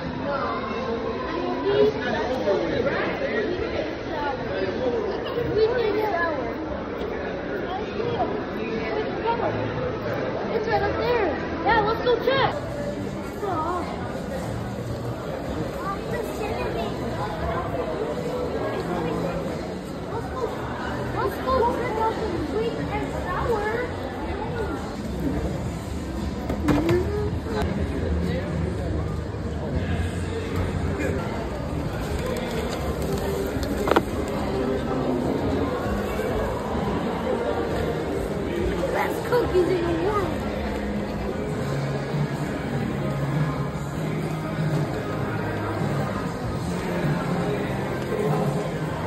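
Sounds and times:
people chattering: 0.0s - 49.0s.

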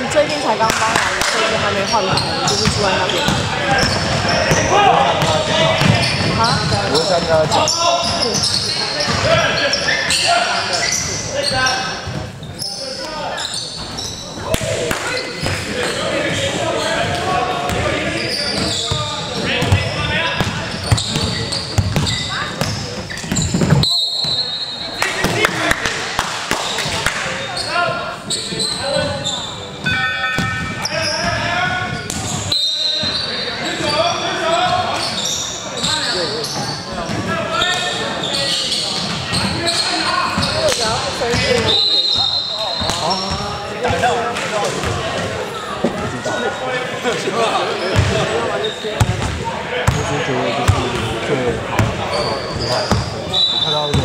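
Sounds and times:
players calling out: 0.0s - 54.0s
basketball bouncing: 0.6s - 7.6s, 18.6s - 23.8s, 48.0s - 48.2s, 49.0s - 50.1s.

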